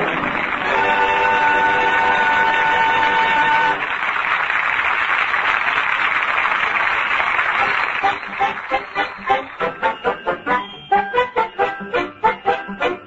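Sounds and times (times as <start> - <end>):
orchestra holding chord: 0.0 - 3.8
audience applause: 0.0 - 10.8.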